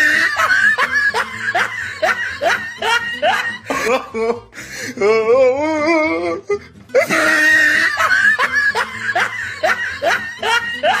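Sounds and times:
person laughing: 0:00.0 - 0:04.6, 0:06.4 - 0:11.0.

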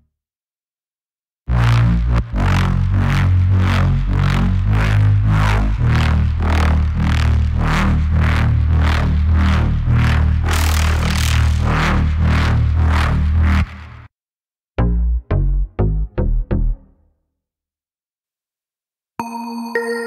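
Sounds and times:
pulsing wobble bass synth: 0:01.5 - 0:14.1, 0:14.8 - 0:17.0.

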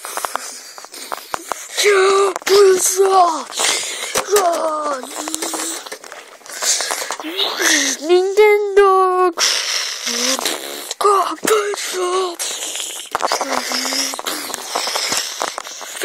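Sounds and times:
breathy hisses and puffs: 0:00.0 - 0:04.3, 0:05.0 - 0:08.0, 0:09.4 - 0:11.0, 0:11.6 - 0:16.0
high-pitched wordless vocal cries: 0:01.8 - 0:05.9, 0:10.0 - 0:15.1.

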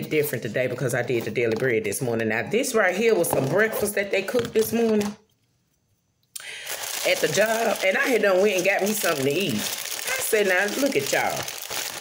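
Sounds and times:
paper wrapping rustling: 0:06.4 - 0:12.0.

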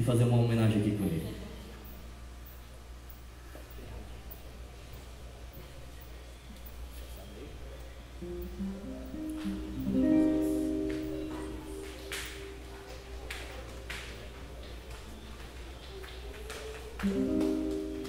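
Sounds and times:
acoustic guitar plucked: 0:08.2 - 0:12.7.

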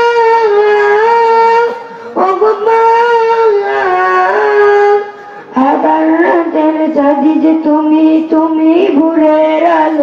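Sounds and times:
high voice singing unaccompanied: 0:00.0 - 0:10.0.

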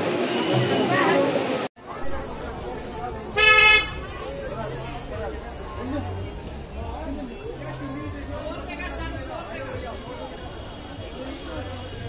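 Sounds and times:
faint street chatter: 0:00.0 - 0:12.0
vehicle horn toot: 0:03.4 - 0:04.1.

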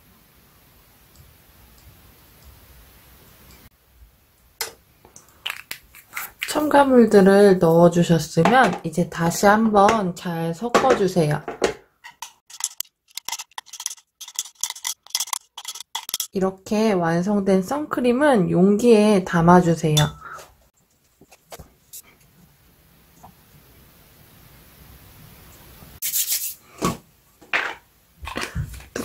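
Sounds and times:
metal spoon scraping glass beaker: 0:12.0 - 0:16.4.

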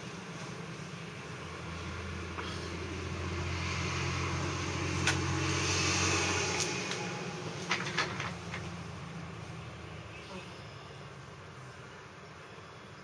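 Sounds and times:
steady low hum: 0:00.0 - 0:13.0
car driving past: 0:01.4 - 0:10.1.

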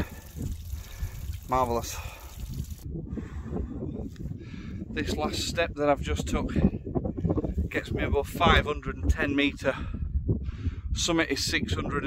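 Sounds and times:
spring water trickling: 0:00.0 - 0:02.8
wind buffeting microphone: 0:00.0 - 0:12.0.

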